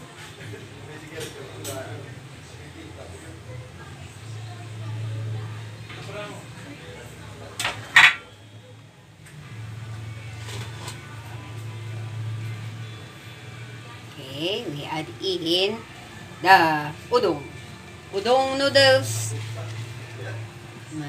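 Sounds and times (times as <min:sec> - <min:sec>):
low electrical hum: 0:00.0 - 0:21.0.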